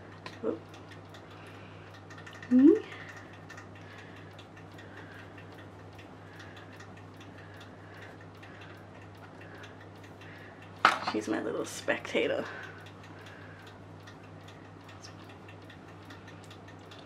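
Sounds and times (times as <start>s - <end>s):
faint ticking: 0.0s - 17.0s
steady low hum: 0.0s - 17.0s.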